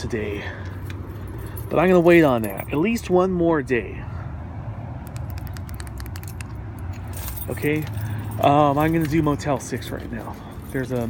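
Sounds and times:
keys jingling: 0:05.2 - 0:11.0.

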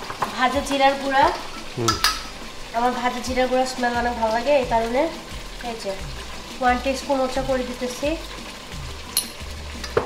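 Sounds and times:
curry sizzling in a pot: 0:00.0 - 0:10.0
person speaking: 0:01.8 - 0:02.0
spoon clinking against jar: 0:01.9 - 0:02.3.

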